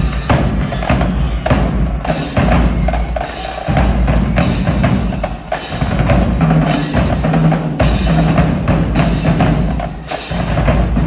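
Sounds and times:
cymbals: 0.0s - 11.0s
snare drum strokes: 0.0s - 11.0s.

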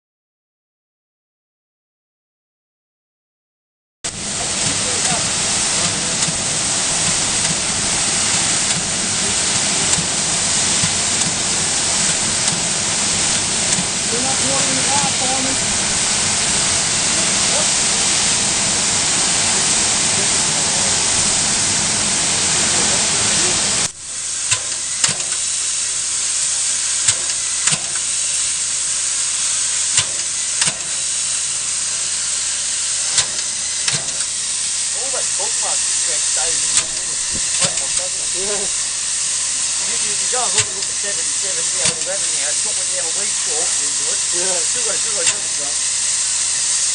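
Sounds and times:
steam locomotive hissing: 4.1s - 46.9s.

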